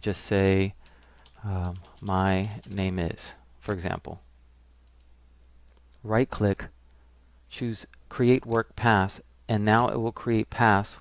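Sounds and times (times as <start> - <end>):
low steady hum: 0.0 - 11.0
computer mouse clicks: 4.8 - 5.1.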